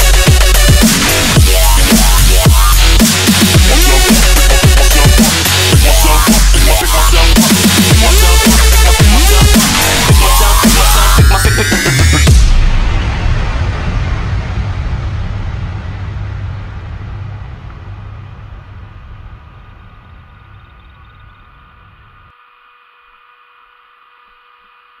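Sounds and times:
wind rumble on microphone: 0:12.6 - 0:22.3.

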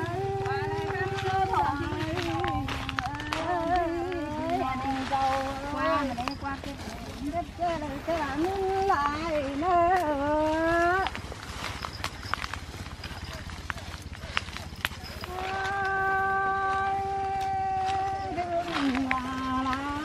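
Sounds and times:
woman singing unaccompanied: 0:00.0 - 0:11.3, 0:15.2 - 0:20.0.

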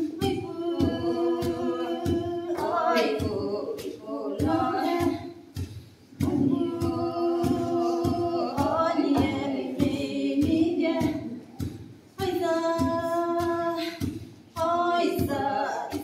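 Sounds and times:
women singing unaccompanied: 0:00.0 - 0:16.0
wooden pestles pounding in mortar: 0:00.1 - 0:16.0.

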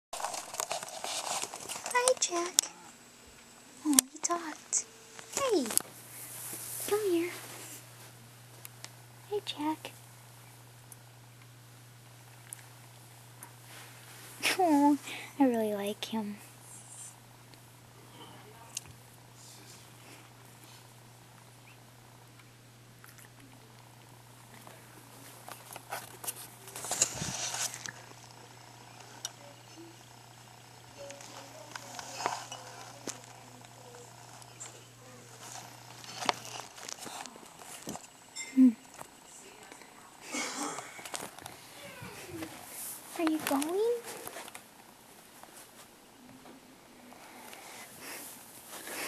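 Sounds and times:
rustling scraping noise: 0:00.2 - 0:02.5, 0:05.1 - 0:08.2, 0:25.2 - 0:28.0
cat purring: 0:23.0 - 0:37.8
fur brushing microphone: 0:25.2 - 0:28.1.

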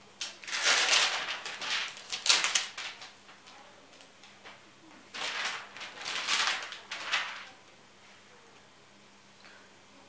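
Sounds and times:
plastic film rustling as peeled: 0:00.2 - 0:07.6.

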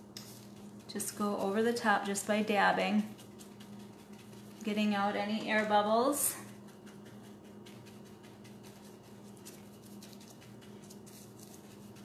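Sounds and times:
paintbrush dabbing: 0:00.0 - 0:12.0
steady low hum: 0:00.0 - 0:12.0.

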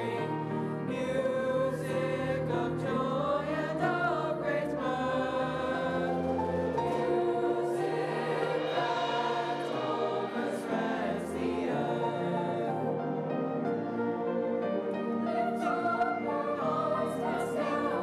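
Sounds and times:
choir singing: 0:00.0 - 0:18.0
orchestra playing: 0:03.5 - 0:18.0.

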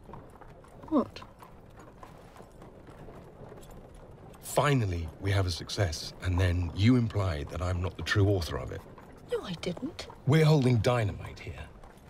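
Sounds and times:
faint horse hooves clip-clopping: 0:00.0 - 0:12.0.

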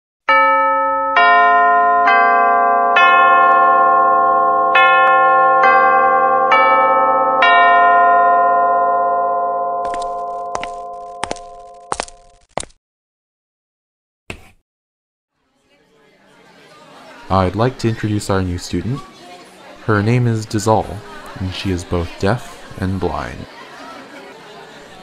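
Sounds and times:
bell chime ringing: 0:00.3 - 0:12.1.

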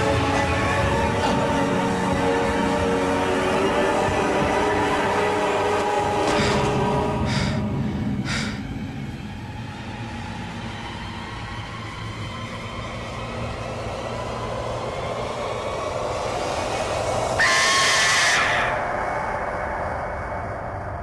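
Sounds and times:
low rumbling drone: 0:00.0 - 0:21.0
hissing whoosh with shrill whistle: 0:17.2 - 0:20.0.

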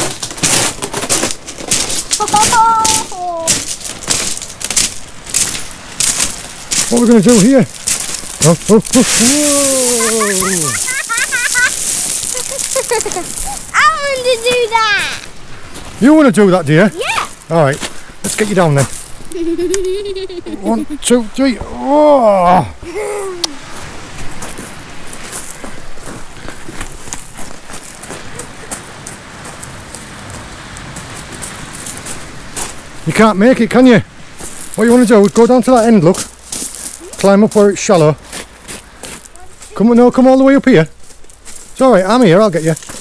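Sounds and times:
footsteps on pebble shingle: 0:00.0 - 0:16.2, 0:16.8 - 0:19.5, 0:23.7 - 0:33.0, 0:34.3 - 0:43.0
crackling hiss: 0:00.0 - 0:43.0
child giggling: 0:02.2 - 0:03.5, 0:09.3 - 0:15.1, 0:19.3 - 0:21.1, 0:22.8 - 0:23.6.

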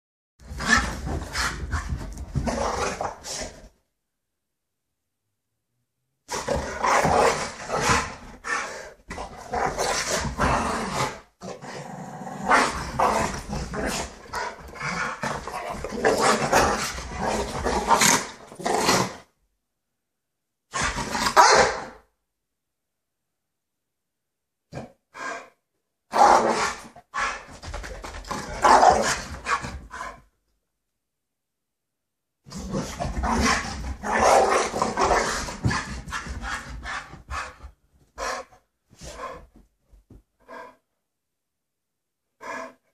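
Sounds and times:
dogs growling: 0:06.3 - 0:19.2, 0:32.5 - 0:39.5
dog barking loudly: 0:21.4 - 0:21.9.

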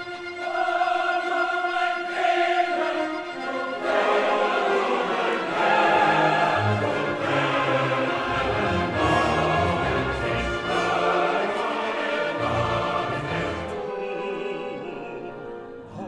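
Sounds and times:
orchestra and choir sustained chords: 0:00.0 - 0:16.0.

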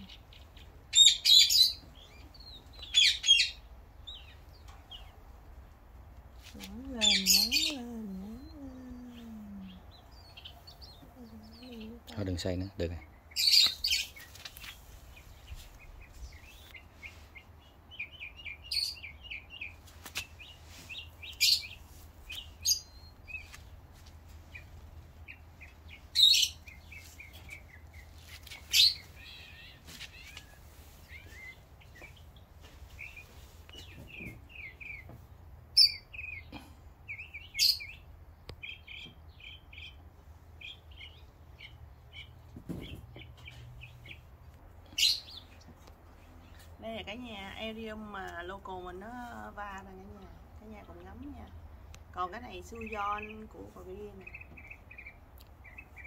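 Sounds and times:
birds chirping: 0:00.0 - 0:56.0.

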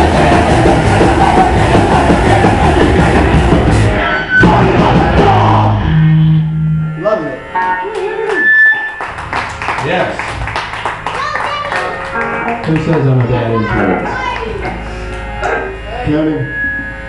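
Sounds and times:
electric guitar and bass chord: 0:00.0 - 0:17.0
high steady tone: 0:00.3 - 0:09.2, 0:13.6 - 0:17.0.

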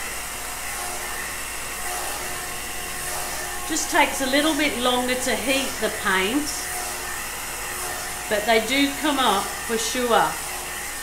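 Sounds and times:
heat gun fan blowing: 0:00.0 - 0:11.0.

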